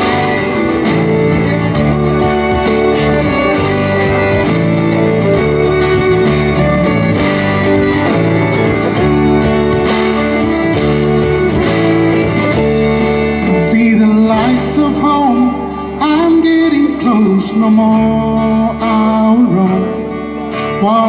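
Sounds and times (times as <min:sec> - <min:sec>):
fiddle playing: 0:00.0 - 0:20.6
acoustic guitar strumming: 0:00.0 - 0:21.0.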